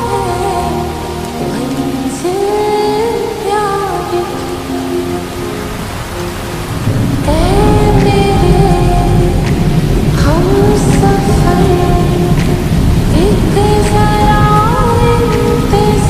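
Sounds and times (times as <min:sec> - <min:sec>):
rainfall hiss: 0:00.0 - 0:16.0
slowed reverb-heavy pop song: 0:00.0 - 0:16.0
low thunder-like rumble: 0:06.5 - 0:16.0.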